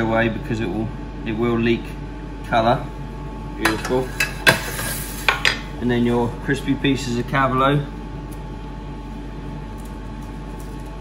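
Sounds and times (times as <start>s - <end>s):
machinery hum and hiss: 0.0s - 11.0s.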